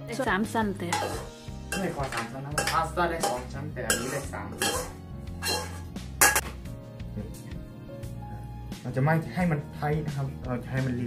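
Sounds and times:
faint background music: 0.0s - 11.0s
utensil scraping a wok: 0.8s - 6.5s.

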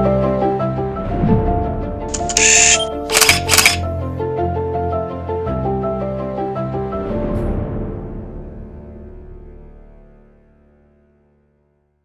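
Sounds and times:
background music: 0.0s - 11.7s
camera shutter clicks: 2.1s - 3.8s.

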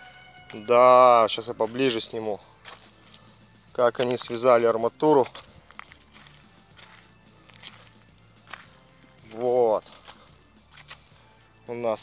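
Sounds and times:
faint background music: 0.0s - 12.0s
soft footsteps on soil: 0.0s - 12.0s.

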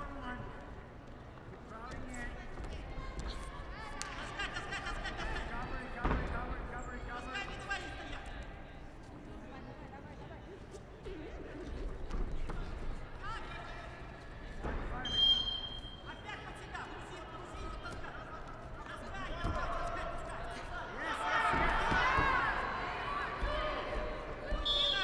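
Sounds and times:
whistle blast: 15.0s - 16.0s, 24.5s - 25.0s
coaches shouting: 19.0s - 25.0s.

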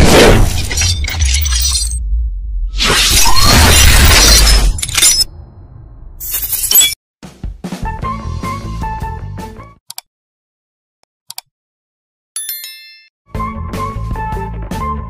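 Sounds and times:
shattering glass impact hits: 0.0s - 2.0s, 3.0s - 5.3s
low rumble: 0.0s - 3.4s
background music: 7.6s - 9.8s, 13.3s - 15.0s
sharp clicks: 9.9s - 10.1s, 11.3s - 11.5s.

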